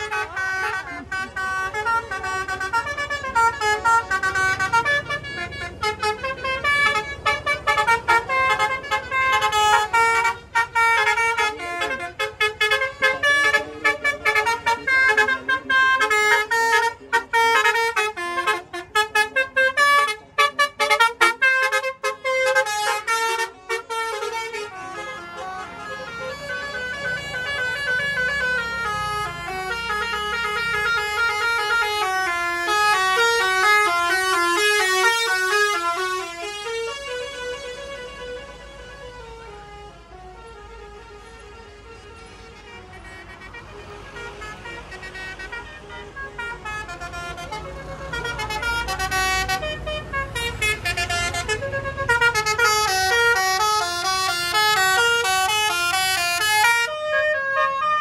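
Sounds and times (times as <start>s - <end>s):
bus passing rumble: 0.0s - 58.0s
multi-tone bus horns melody: 0.0s - 58.0s.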